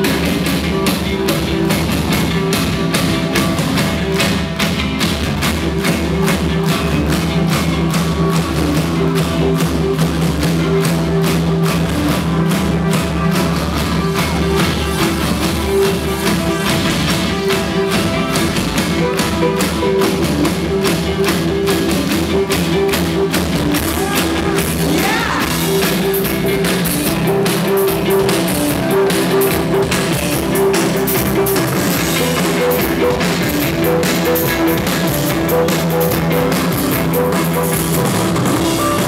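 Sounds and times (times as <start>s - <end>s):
drum kit beat: 0.0s - 39.0s
rock band playing loudly: 0.0s - 39.0s.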